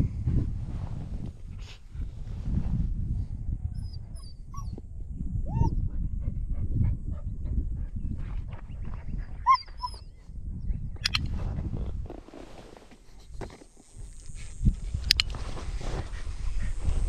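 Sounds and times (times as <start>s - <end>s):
low rumble: 0.0s - 12.1s
puppy crying: 5.5s - 5.7s, 9.4s - 10.1s.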